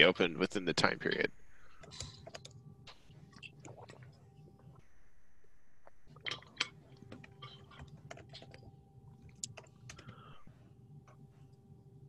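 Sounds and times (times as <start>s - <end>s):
steady low hum: 0.0s - 12.0s
typing on computer keyboard: 1.8s - 2.6s.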